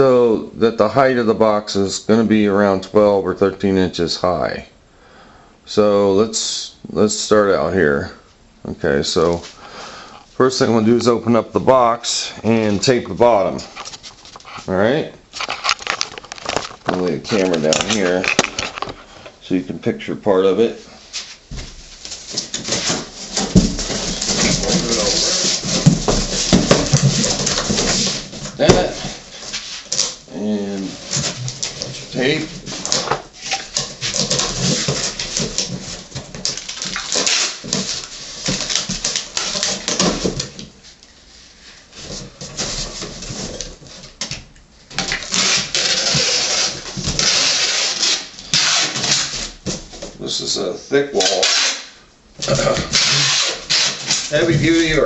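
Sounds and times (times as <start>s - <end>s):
cardboard flaps knocking and rustling: 21.4s - 30.2s, 31.0s - 40.8s, 42.0s - 47.4s, 49.0s - 50.2s
packing tape screeching: 22.4s - 35.8s, 36.4s - 40.2s, 45.0s - 49.6s, 51.2s - 54.5s.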